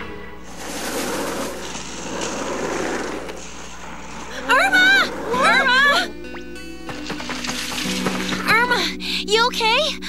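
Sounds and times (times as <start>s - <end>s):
steady rushing noise: 0.0s - 5.4s.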